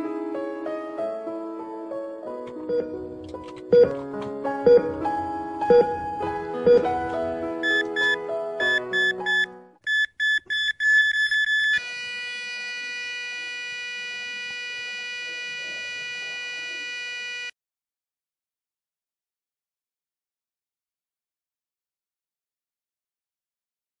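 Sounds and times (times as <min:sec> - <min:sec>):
heart monitor beeps: 0:04.7 - 0:04.9, 0:05.7 - 0:06.0, 0:06.7 - 0:06.9, 0:07.6 - 0:17.5
flatline tone: 0:11.6 - 0:17.5.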